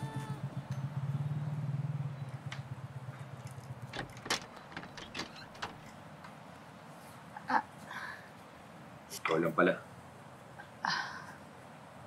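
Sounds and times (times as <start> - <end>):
door creaking: 3.8 - 6.0
door lock knocks and clicks: 3.9 - 5.9.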